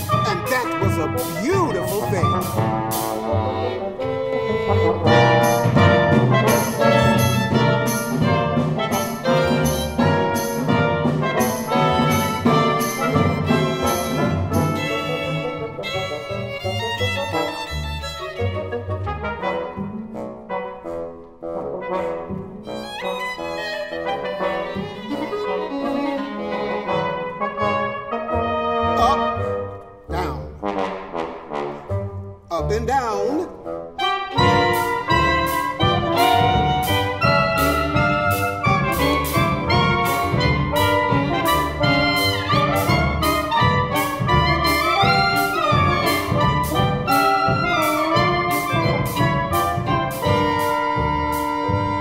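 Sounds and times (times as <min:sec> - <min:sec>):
steady drum beat: 0:00.0 - 0:03.2, 0:05.1 - 0:15.0, 0:34.4 - 0:52.0
jazz chamber ensemble playing: 0:00.0 - 0:52.0
trumpet and trombone: 0:00.0 - 0:52.0.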